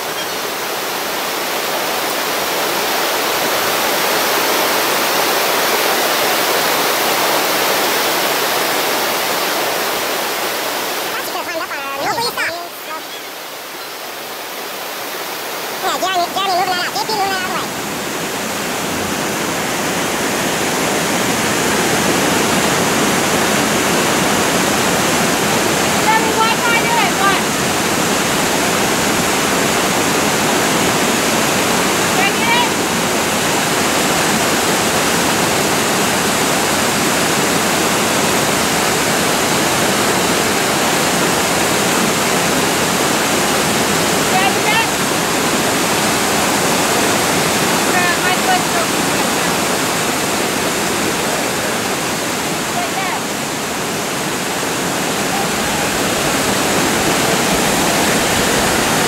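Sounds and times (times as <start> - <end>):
waterfall rushing: 0.0 - 59.0.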